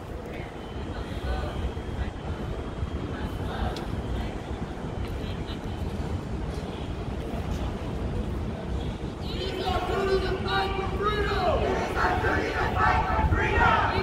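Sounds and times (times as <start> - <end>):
faint voices: 0.0 - 14.0
traffic rumble: 0.0 - 14.0.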